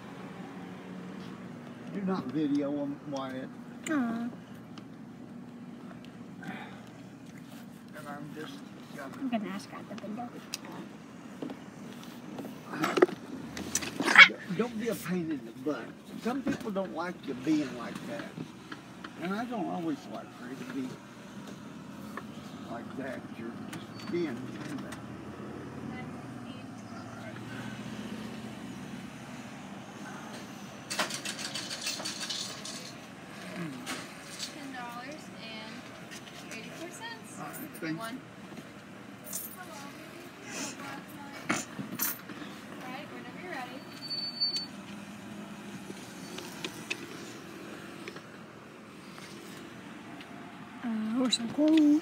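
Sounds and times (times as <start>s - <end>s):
rattling clicks and scrapes: 30.3s - 34.6s.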